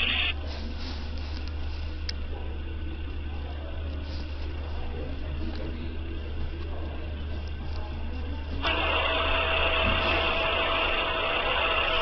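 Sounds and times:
low hum: 0.0s - 12.0s
mechanical whir with faint whine: 0.0s - 12.0s.

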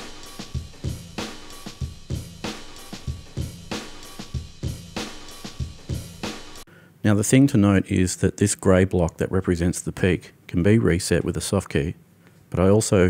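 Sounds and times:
recorded drum beat: 0.0s - 6.7s.

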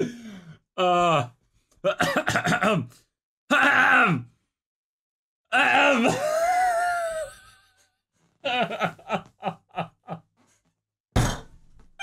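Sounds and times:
man laughing: 6.0s - 7.7s, 8.4s - 10.3s.

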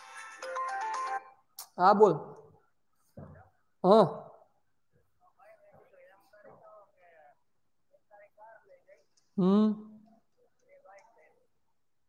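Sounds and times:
mobile phone ringtone melody: 0.0s - 1.4s.

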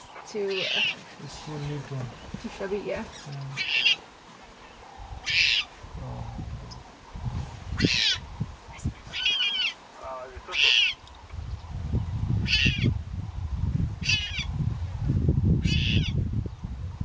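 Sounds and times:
leopard cub crying: 3.6s - 4.0s, 5.2s - 5.7s, 7.8s - 8.3s, 9.1s - 9.8s, 10.5s - 11.0s, 12.4s - 12.9s, 14.0s - 14.5s, 15.6s - 16.2s.

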